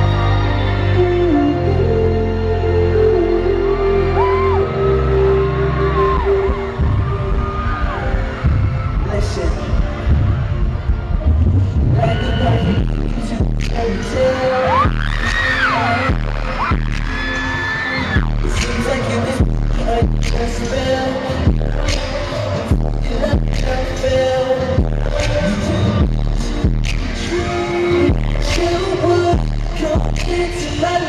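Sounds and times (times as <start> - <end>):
loud concert music with heavy beat: 0.0 - 31.0
high voices singing: 11.7 - 31.0.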